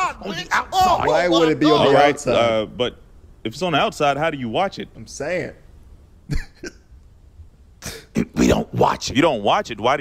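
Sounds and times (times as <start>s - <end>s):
man making throat sounds: 7.8s - 8.8s.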